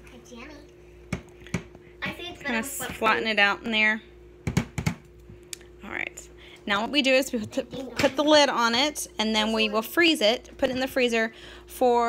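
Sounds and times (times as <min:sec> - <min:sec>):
child's voice: 0:00.0 - 0:00.8, 0:02.0 - 0:02.9, 0:07.6 - 0:08.2
faint steady hum: 0:00.0 - 0:12.0.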